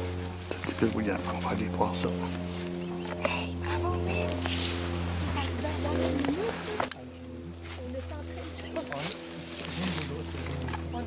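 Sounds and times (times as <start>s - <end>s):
steady low drone: 0.0s - 11.0s
faint murmured voices: 0.1s - 11.0s.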